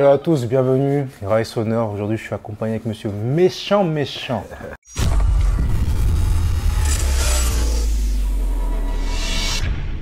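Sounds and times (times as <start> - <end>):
deep bass rumble: 5.0 - 10.0.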